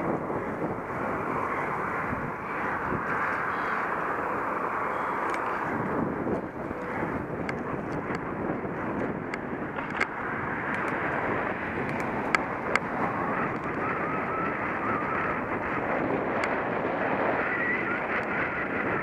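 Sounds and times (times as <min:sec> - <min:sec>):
bicycle riding noise: 0:00.0 - 0:19.0
wind rushing over microphone: 0:00.0 - 0:19.0
sharp clicks: 0:05.2 - 0:05.5.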